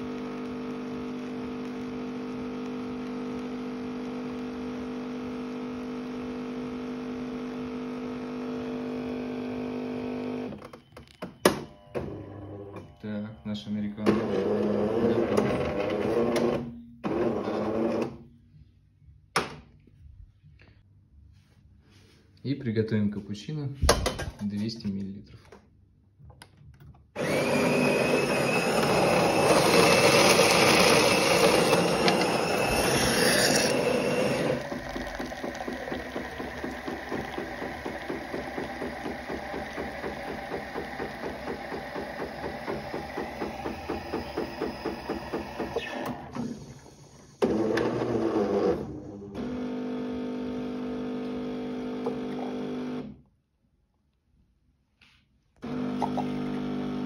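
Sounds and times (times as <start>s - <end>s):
milk frothing: 0.0s - 10.5s, 27.2s - 45.0s, 47.4s - 53.0s, 55.7s - 57.0s
coffee grinder running: 0.0s - 10.6s, 14.1s - 18.0s, 27.2s - 46.0s, 46.6s - 53.1s, 55.6s - 57.0s
coffee machine pulsing: 0.0s - 18.2s, 27.2s - 53.2s, 55.6s - 57.0s.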